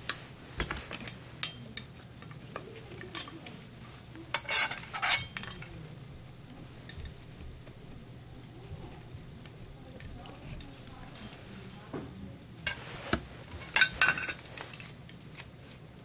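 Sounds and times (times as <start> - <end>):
scraping rasps of parts: 4.3 - 5.7.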